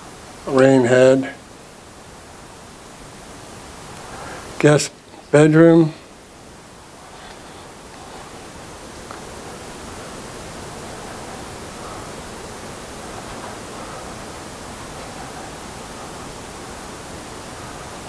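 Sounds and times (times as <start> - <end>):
room noise hiss: 0.0 - 18.0.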